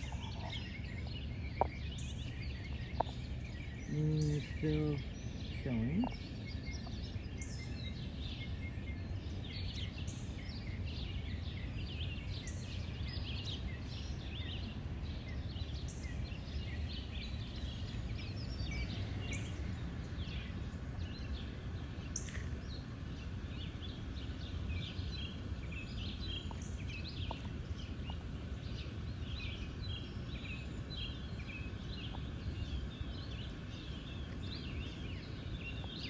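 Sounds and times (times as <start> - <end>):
bird chirps and calls: 0.0 - 36.0
low background rumble: 0.0 - 36.0.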